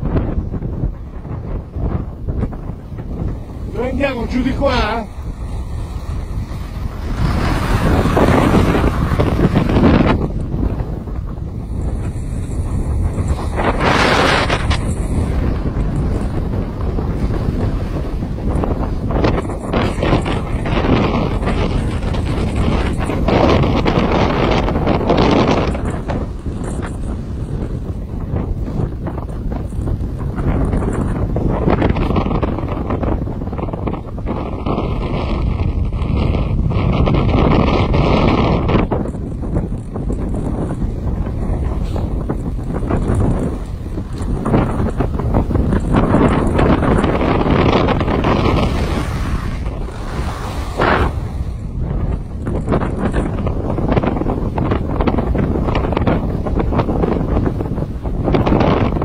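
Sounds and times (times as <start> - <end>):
wind buffeting microphone: 0.0 - 59.0
skis scraping on snow: 3.1 - 10.7, 40.4 - 52.8.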